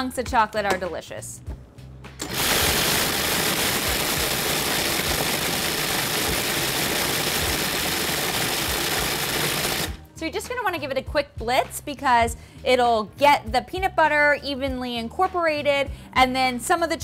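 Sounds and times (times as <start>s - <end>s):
food processor running: 2.2s - 10.0s.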